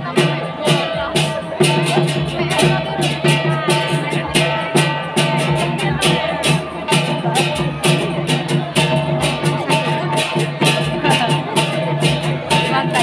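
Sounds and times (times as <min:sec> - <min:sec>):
drum beating a pattern: 0:00.0 - 0:13.0.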